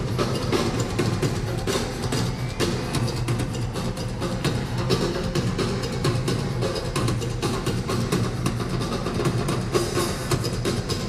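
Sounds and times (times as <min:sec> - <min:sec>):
congas: 0:00.0 - 0:11.0
drum kit: 0:00.0 - 0:11.0.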